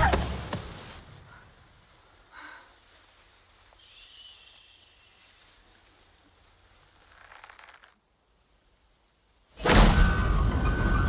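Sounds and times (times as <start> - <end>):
faint outdoor ambience: 0.0 - 11.0
insect-like high hiss: 0.0 - 11.0
soft rustle: 0.2 - 8.0.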